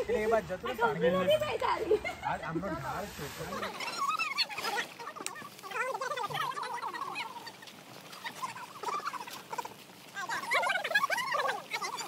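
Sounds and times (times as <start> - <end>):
people talking over each other: 0.0 - 12.0.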